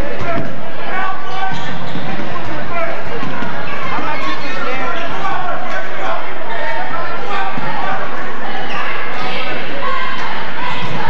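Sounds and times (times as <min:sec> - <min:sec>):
spectators talking: 0:00.0 - 0:11.0.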